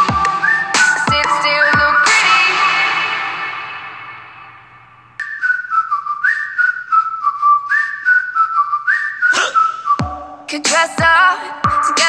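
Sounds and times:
light regular beat: 0:00.0 - 0:02.5, 0:09.4 - 0:12.0
whistled melody: 0:00.0 - 0:02.7, 0:05.2 - 0:10.6
music: 0:00.0 - 0:04.6, 0:10.0 - 0:12.0.

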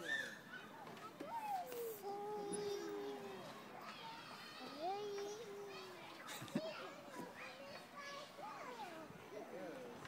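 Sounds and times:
toddler singing: 0:01.3 - 0:03.4.

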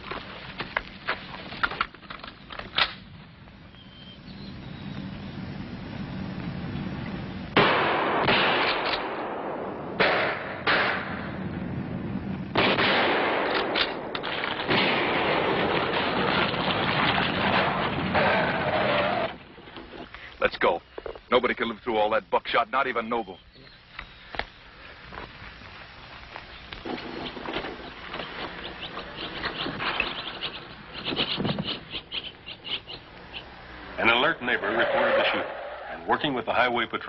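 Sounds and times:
shotgun blasts: 0:07.6 - 0:11.3, 0:12.5 - 0:16.5.

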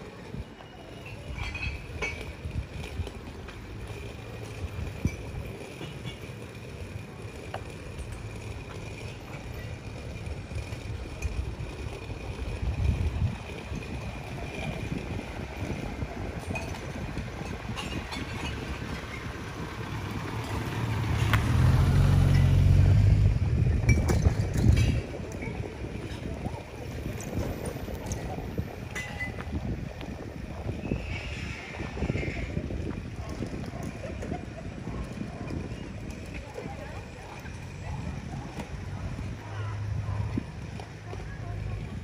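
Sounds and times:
city street low rumble: 0:00.0 - 0:42.0.

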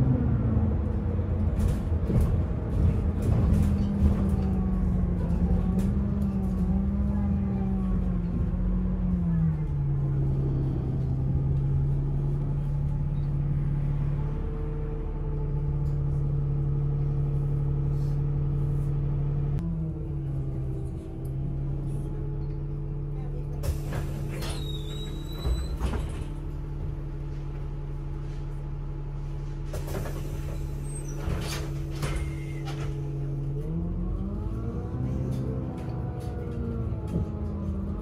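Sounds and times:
bus engine rumble and drone: 0:00.0 - 0:38.0
bus interior rattles: 0:00.0 - 0:38.0.

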